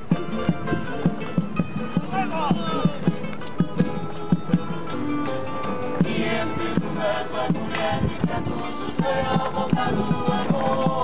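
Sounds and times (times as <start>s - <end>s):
drum beats: 0.0s - 11.0s
mandolins: 0.0s - 11.0s
strummed acoustic guitar: 0.0s - 11.0s.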